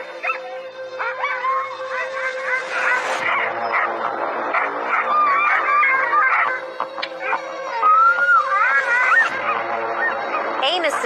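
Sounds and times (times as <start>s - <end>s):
dogs barking and howling: 0.0s - 11.0s
music with steady drone: 0.0s - 11.0s.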